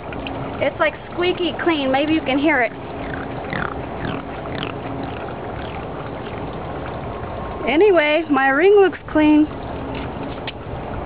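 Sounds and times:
wet fingers squeaking: 3.0s - 5.8s.

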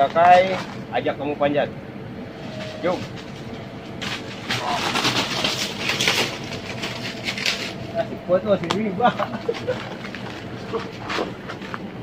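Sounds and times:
leaves and twigs crackling: 4.0s - 7.8s.

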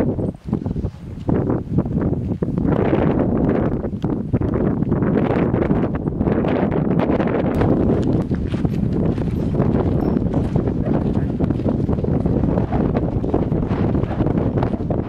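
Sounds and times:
wind buffeting microphone: 0.0s - 15.0s
footsteps on gravel: 7.6s - 12.2s.

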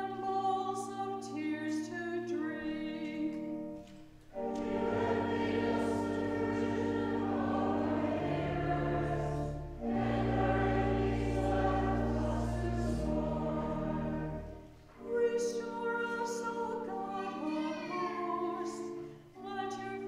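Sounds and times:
held accompaniment: 3.1s - 19.1s
group of voices singing: 4.4s - 18.8s.

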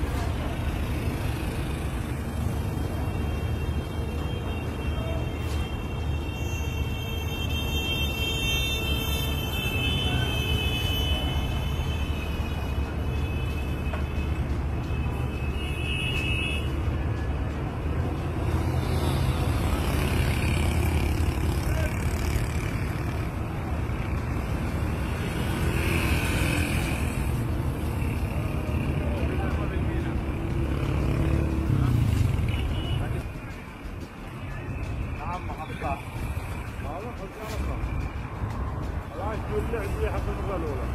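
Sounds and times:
low rumble of traffic: 0.0s - 40.9s.

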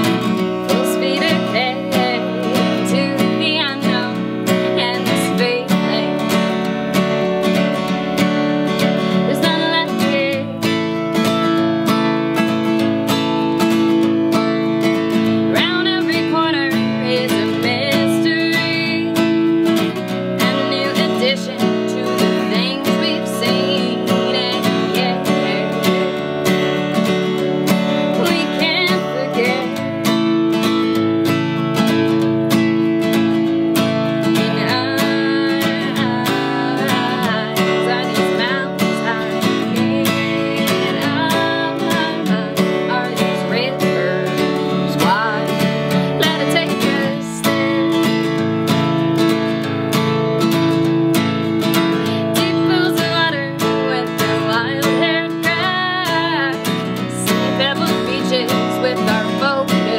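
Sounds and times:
acoustic guitar strumming: 0.0s - 59.9s
woman singing: 0.0s - 59.9s.

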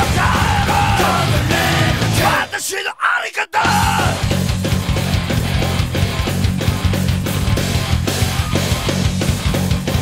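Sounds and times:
bass guitar: 0.0s - 2.5s, 3.6s - 10.0s
distorted electric guitar: 0.0s - 2.5s, 3.7s - 10.0s
drums playing: 0.0s - 2.6s, 3.6s - 10.0s
shouted vocals: 0.0s - 4.3s.

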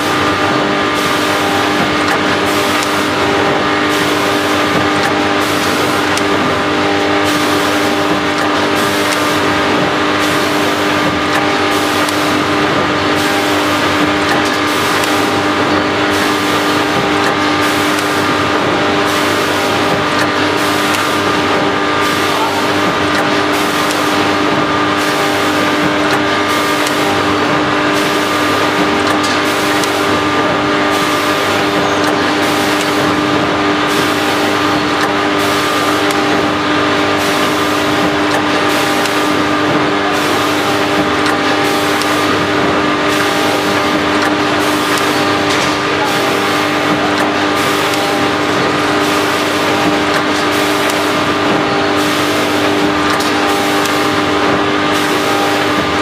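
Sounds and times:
machine stroke cycling: 0.0s - 56.0s
packing machine humming: 0.0s - 56.0s.

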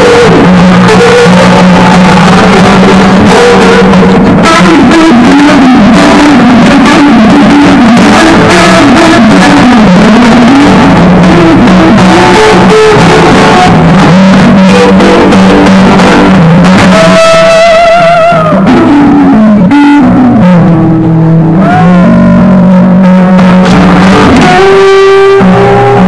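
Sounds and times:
blues acoustic guitar: 0.0s - 26.0s.

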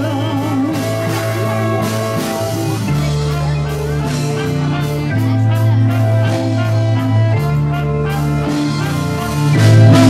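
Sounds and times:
drum and cymbal hits: 0.0s - 10.0s
live band playing: 0.0s - 10.0s.

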